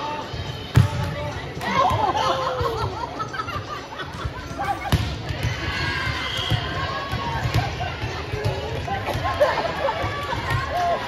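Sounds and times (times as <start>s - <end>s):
voices and chatter: 0.0s - 11.0s.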